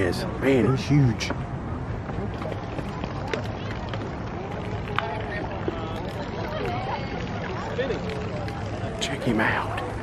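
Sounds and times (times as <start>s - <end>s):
people talking: 2.1s - 10.0s.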